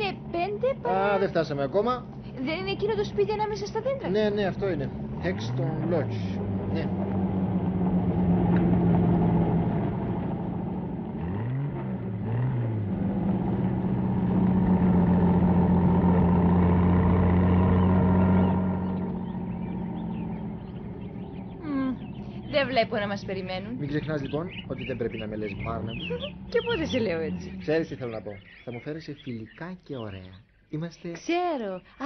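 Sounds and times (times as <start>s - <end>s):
car engine running: 0.0s - 29.5s.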